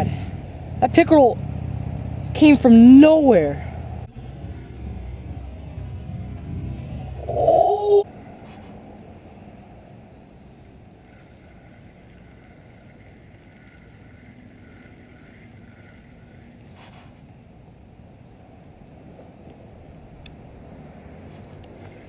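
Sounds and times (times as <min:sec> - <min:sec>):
wind buffeting microphone: 0:03.6 - 0:10.2.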